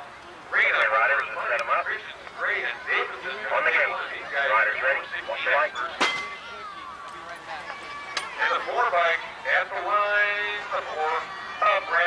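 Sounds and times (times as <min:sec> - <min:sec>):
man calling over loudspeaker: 0:00.5 - 0:06.3, 0:08.4 - 0:12.0.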